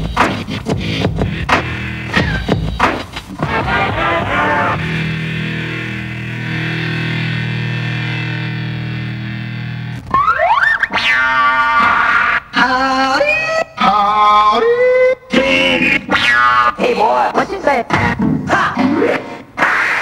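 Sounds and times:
record scratching by hand: 0.0s - 5.1s, 9.8s - 13.5s, 15.4s - 20.0s.

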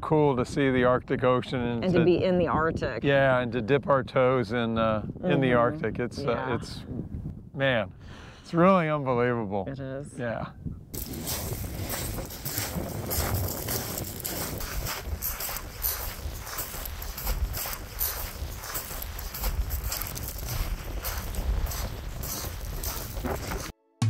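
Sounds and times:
wind rumbling on microphone: 0.1s - 8.4s, 10.0s - 23.7s
footsteps crunching on pebbles: 11.0s - 23.7s.

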